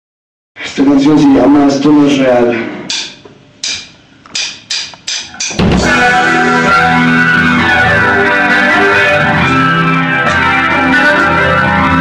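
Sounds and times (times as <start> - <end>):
drumsticks clicking: 2.9 - 5.6.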